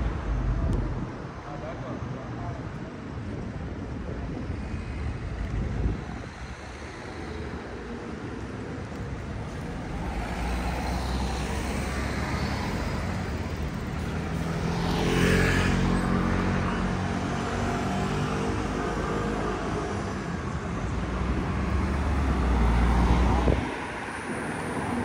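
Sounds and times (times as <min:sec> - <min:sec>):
city street traffic hum: 0:00.0 - 0:25.0.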